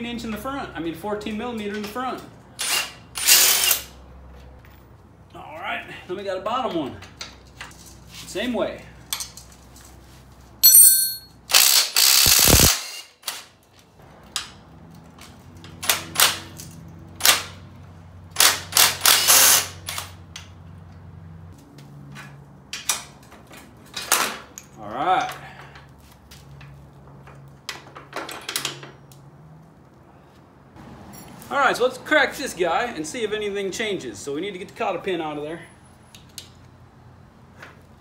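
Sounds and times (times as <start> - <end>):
impact wrench hammering: 10.6 - 13.1.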